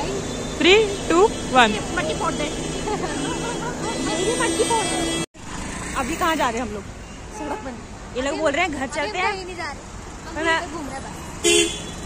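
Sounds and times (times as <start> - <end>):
women chattering: 0.0 - 11.4
street noise: 0.0 - 12.0
vehicle engine hum: 0.0 - 12.0.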